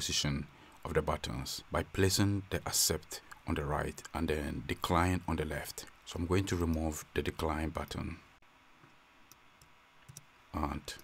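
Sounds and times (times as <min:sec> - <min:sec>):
computer mouse clicks: 0:09.3 - 0:10.3.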